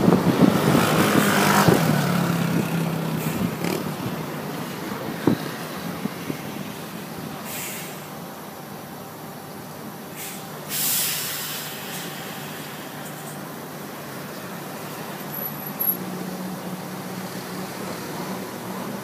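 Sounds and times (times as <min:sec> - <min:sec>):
bus diesel engine running: 0:00.0 - 0:19.0
air brakes hissing: 0:03.2 - 0:03.6, 0:07.4 - 0:08.1, 0:10.1 - 0:13.5.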